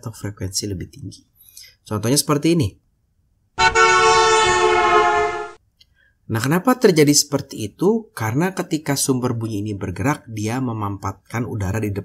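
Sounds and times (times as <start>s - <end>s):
car horn blast: 3.6s - 5.6s.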